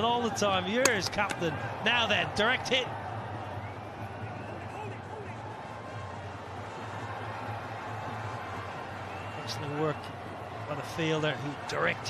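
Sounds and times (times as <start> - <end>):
stadium noise: 0.0 - 12.0.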